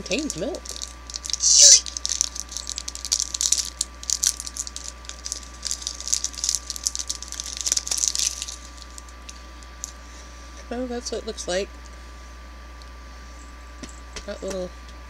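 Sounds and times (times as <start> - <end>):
wrapper crinkling: 0.0 - 10.0.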